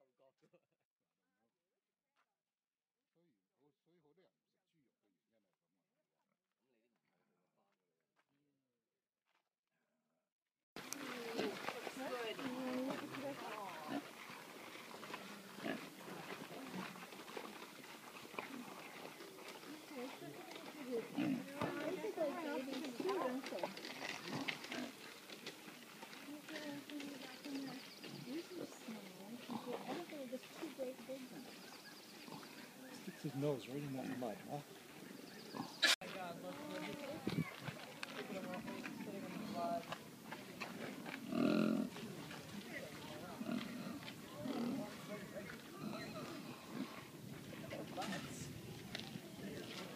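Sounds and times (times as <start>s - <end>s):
pigs grunting: 10.8s - 25.6s, 28.0s - 36.0s, 40.6s - 48.4s
people talking: 11.0s - 14.0s, 19.7s - 24.3s, 26.3s - 31.5s, 36.0s - 39.9s, 42.0s - 46.6s, 47.6s - 49.9s.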